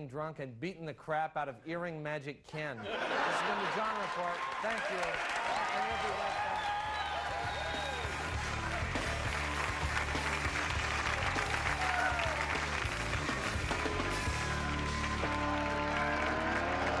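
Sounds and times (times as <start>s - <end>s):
audience applauding: 3.2s - 17.0s
whistles: 6.6s - 8.2s
guitar music: 12.8s - 17.0s.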